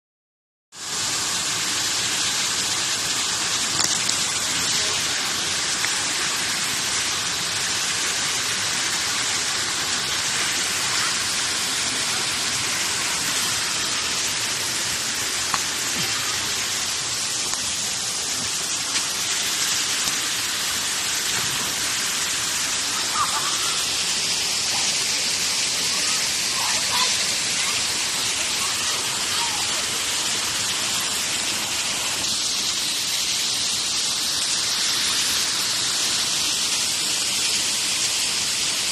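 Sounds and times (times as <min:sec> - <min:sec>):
waterfall rushing over rocks: 0:00.8 - 0:38.9.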